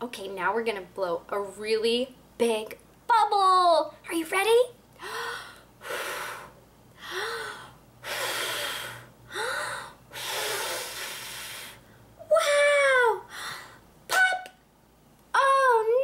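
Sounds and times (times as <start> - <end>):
woman blowing out long breaths: 5.0 - 11.9
woman breathing in sharply: 5.0 - 12.0.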